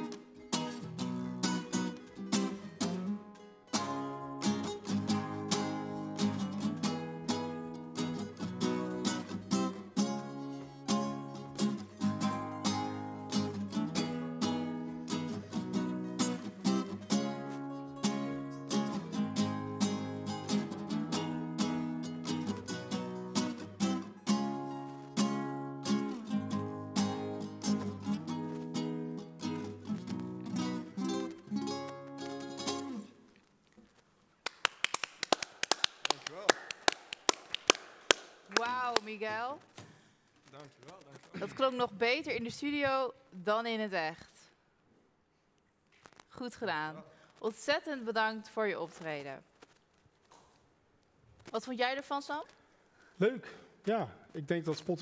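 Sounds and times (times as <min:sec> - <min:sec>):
acoustic guitar strumming: 0:00.0 - 0:33.2
people clapping: 0:34.4 - 0:39.8.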